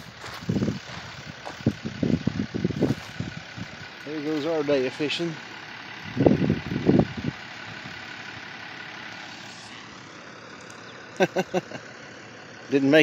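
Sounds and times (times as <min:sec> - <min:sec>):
truck engine running: 0:00.0 - 0:13.0.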